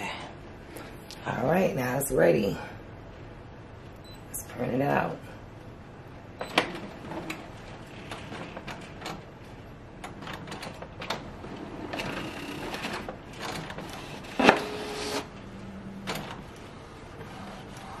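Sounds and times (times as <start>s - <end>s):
printer clicks and motor whirring: 10.0s - 15.3s
printer loud clack: 10.1s - 15.3s.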